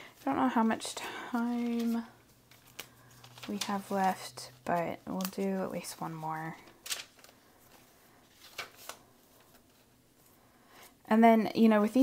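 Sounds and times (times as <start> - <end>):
paper pages turning: 1.3 - 10.4
soft paper flicks: 1.4 - 9.9.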